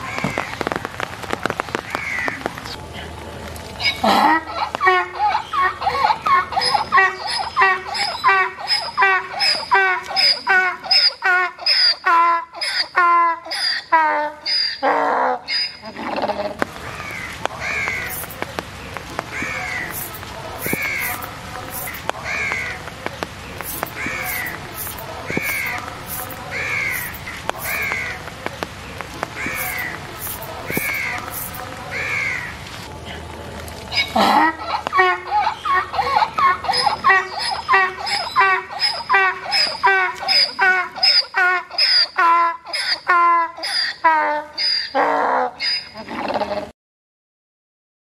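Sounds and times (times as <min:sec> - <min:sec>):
crow cawing: 0:01.9 - 0:02.4, 0:16.9 - 0:18.4, 0:19.3 - 0:22.8, 0:23.6 - 0:28.2, 0:29.4 - 0:32.5
donkey braying: 0:03.8 - 0:16.6, 0:17.6 - 0:18.4, 0:19.5 - 0:22.7, 0:23.6 - 0:28.2, 0:29.4 - 0:31.6, 0:33.9 - 0:46.6.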